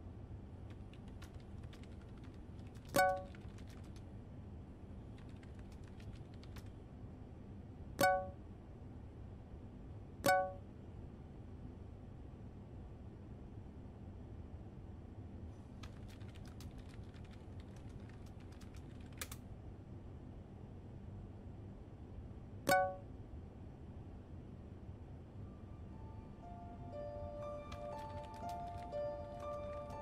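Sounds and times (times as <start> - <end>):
low steady background hum: 0.0 - 30.0
keyboard key clicks: 0.7 - 4.0.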